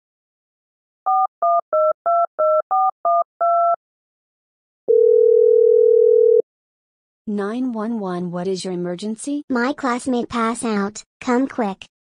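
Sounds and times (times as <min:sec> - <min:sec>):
steady telephone line tone: 0:04.9 - 0:06.4.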